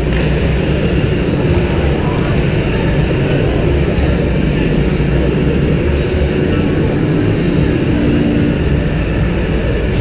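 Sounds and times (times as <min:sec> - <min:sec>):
ice rink rumble and din: 0:00.0 - 0:10.0.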